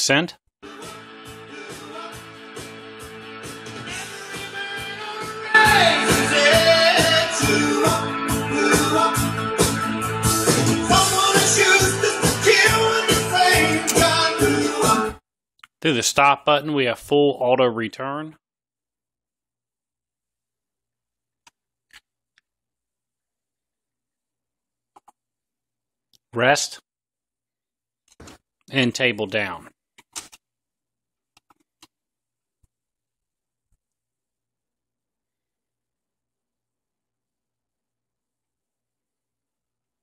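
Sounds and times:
music with singing from vinyl record: 0.6s - 15.2s.

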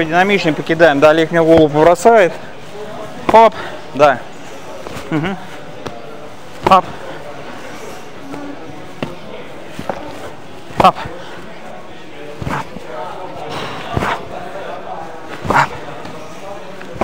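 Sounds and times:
boxing gloves smacking mitts: 13.8s - 14.3s.

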